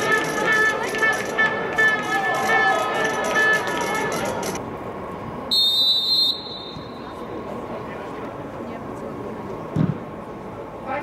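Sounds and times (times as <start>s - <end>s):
referee's whistle blast: 5.5s - 7.1s.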